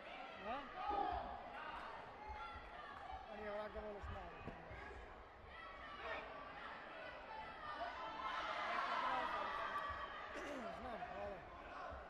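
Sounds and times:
voices in a sports hall: 0.0 - 12.0.

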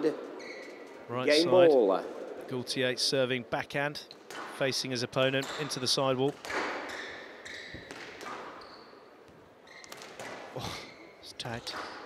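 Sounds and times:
short high squeak: 0.4 - 0.9
squash ball hitting rackets and walls: 4.2 - 10.6.

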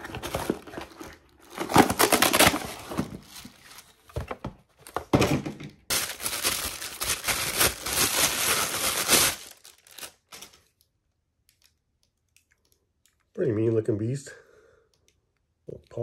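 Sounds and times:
plastic wrapping crinkling: 5.9 - 10.8.

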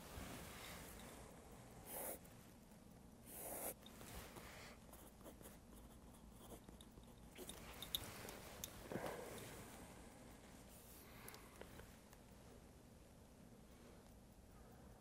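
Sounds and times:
small ticks: 1.0 - 8.8
pen scratching on paper: 3.3 - 3.8.

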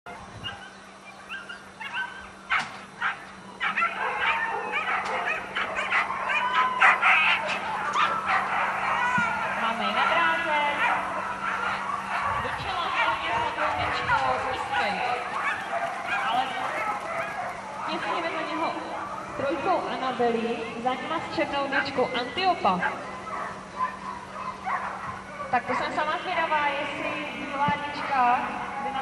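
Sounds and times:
dogs yelping and barking: 0.1 - 20.0, 21.9 - 25.9.

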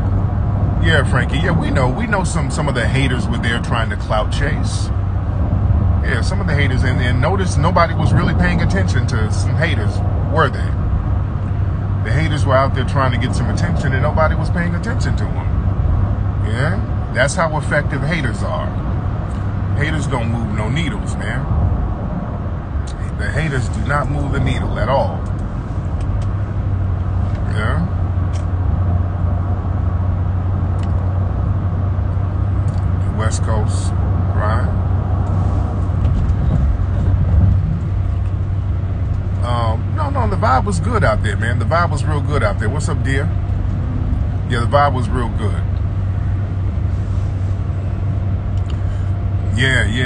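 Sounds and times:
car cabin hum and rush: 0.0 - 50.0.

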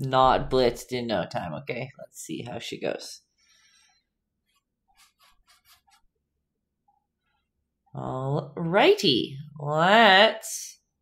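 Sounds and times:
paintbrush scratching canvas: 4.4 - 6.2.

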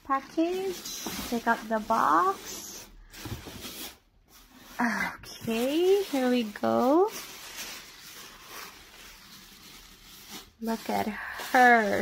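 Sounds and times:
packing wrap rustling and crinkling: 0.0 - 12.0.

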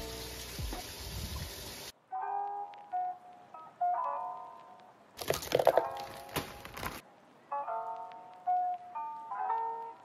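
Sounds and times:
soft instrumental music: 1.9 - 10.0.

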